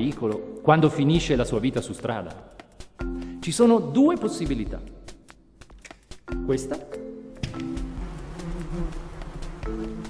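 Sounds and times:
insect buzzing: 0:07.4 - 0:10.0.

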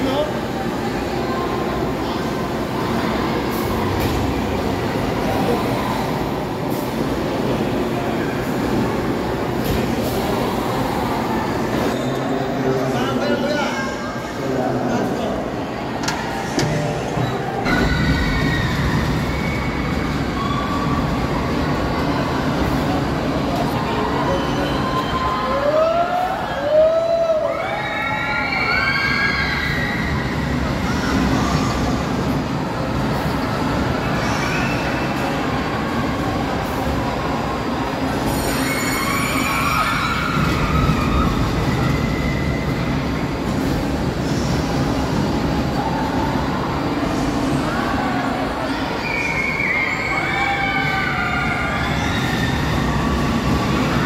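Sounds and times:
roller coaster rumbling on steel track: 0:00.0 - 0:54.0
high squeals: 0:38.1 - 0:43.4, 0:48.7 - 0:54.0.

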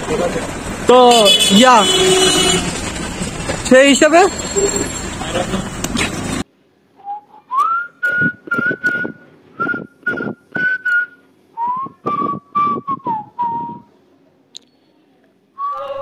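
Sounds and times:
whistled melody: 0:07.0 - 0:13.9, 0:15.6 - 0:16.0.

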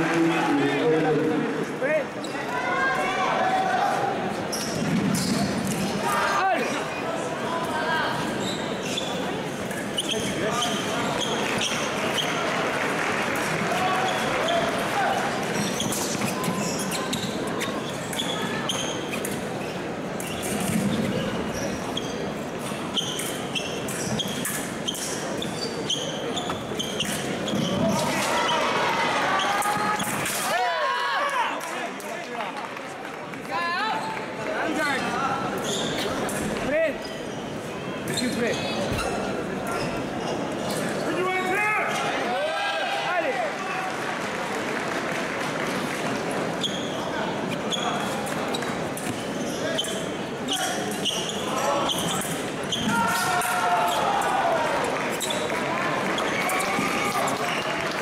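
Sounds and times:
voices and shouts echoing: 0:00.0 - 0:04.5, 0:41.0 - 0:44.3
shoes thudding and squeaking: 0:15.6 - 0:22.2, 0:22.9 - 0:28.0, 0:38.0 - 0:40.9.

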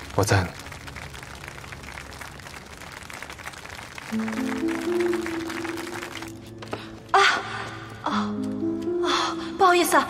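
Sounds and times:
faint applause: 0:00.0 - 0:06.5
drama score music: 0:00.0 - 0:10.0.

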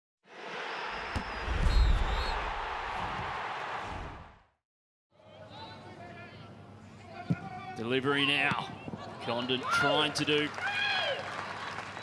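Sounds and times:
deep boom: 0:01.2 - 0:03.3.

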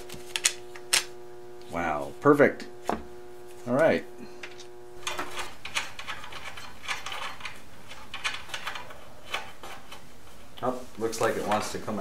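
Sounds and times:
steady hum: 0:00.0 - 0:12.0
metal parts clicking and clattering: 0:05.0 - 0:10.0.

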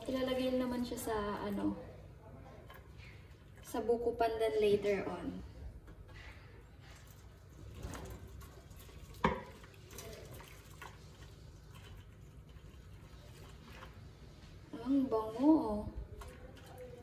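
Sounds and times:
liquid trickling into a pan: 0:06.2 - 0:14.5, 0:16.0 - 0:17.0.

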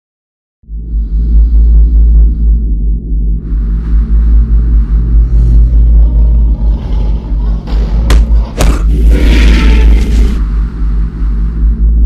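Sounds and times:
deep rumbling drone: 0:00.6 - 0:12.0.

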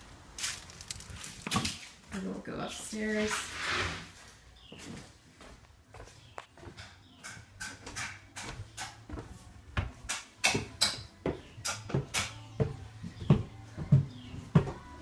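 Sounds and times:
footsteps climbing stairs: 0:05.4 - 0:15.0.

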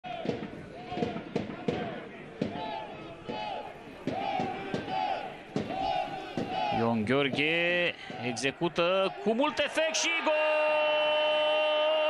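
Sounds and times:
drum beating: 0:00.1 - 0:08.6
football supporters chanting: 0:00.1 - 0:12.0.

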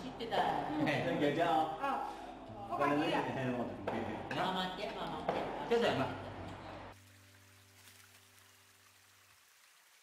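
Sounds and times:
voices at a meal: 0:00.0 - 0:07.0
stream trickling: 0:06.9 - 0:10.0.

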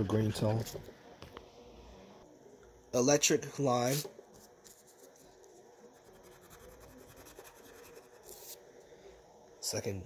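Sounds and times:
crayon scratching on paper: 0:05.9 - 0:08.6.

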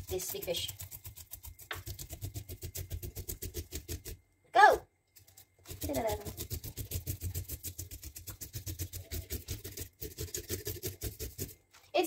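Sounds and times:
knife scraping fish scales: 0:00.0 - 0:04.2, 0:05.2 - 0:11.6.

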